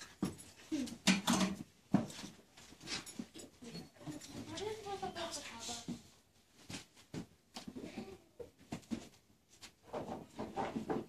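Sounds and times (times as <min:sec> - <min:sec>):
children's muffled vocal sounds: 0:07.7 - 0:08.6.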